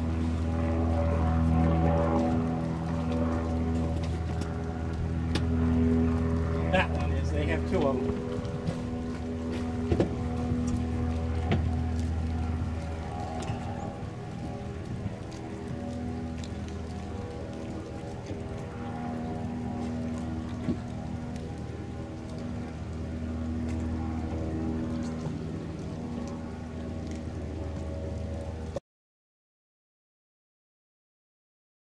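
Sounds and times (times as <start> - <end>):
low engine drone: 0.0 - 28.8.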